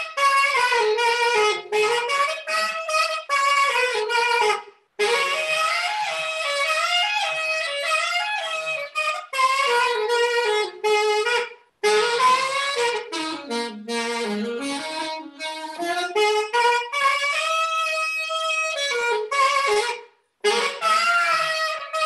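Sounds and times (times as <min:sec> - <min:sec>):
alto saxophone solo: 0:00.0 - 0:22.0.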